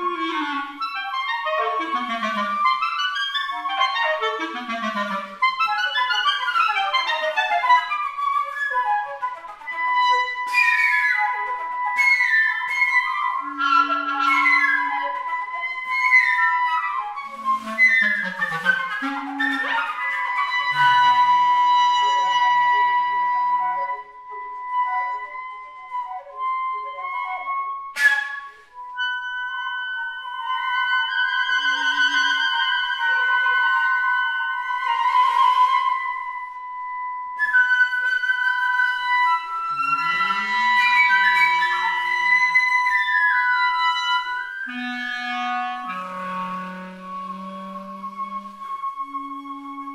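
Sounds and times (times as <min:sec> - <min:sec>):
flute and clarinet chamber music: 0:00.0 - 0:49.9.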